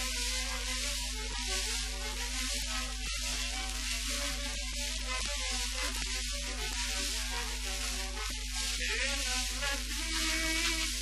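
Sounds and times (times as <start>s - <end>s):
old popular song recording: 0.0s - 11.0s
record hiss and hum: 0.0s - 11.0s.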